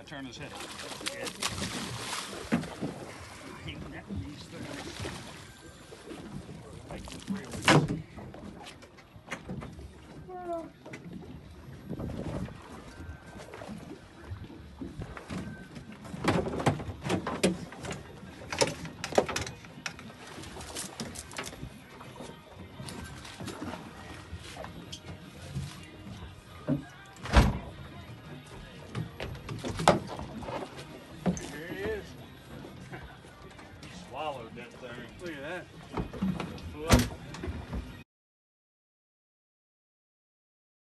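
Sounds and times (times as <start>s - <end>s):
water noise: 0.0s - 38.0s
wind: 0.0s - 38.0s
thumps and knocks on boat deck: 26.6s - 27.9s, 28.9s - 30.6s, 35.9s - 38.0s.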